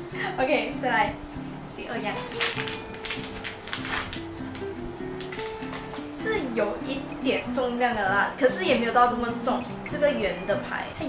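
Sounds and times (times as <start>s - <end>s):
light background music: 0.0s - 11.0s
plastic packet crinkling: 2.2s - 6.1s.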